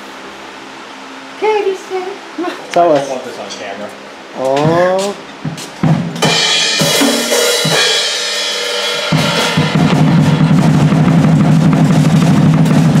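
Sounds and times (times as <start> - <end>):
fast drum strokes: 4.6 - 13.0
cymbal ringing: 6.2 - 13.0.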